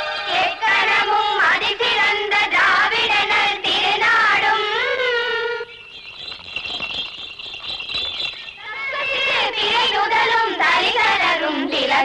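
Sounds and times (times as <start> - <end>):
high-pitched singing: 7.7 - 12.0.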